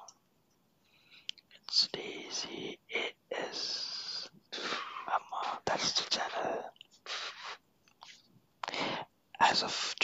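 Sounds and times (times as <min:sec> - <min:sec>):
person whispering: 0:01.5 - 0:07.6, 0:08.6 - 0:10.0.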